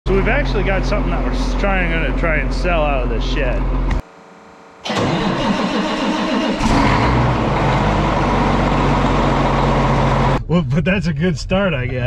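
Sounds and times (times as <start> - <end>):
tractor diesel engine starting: 4.8 - 10.4.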